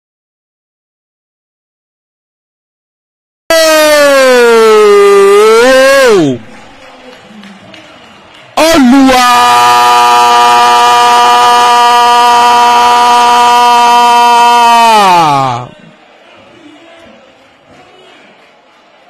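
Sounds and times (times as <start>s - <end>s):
commentator shouting goal: 3.5s - 6.5s, 8.6s - 15.8s.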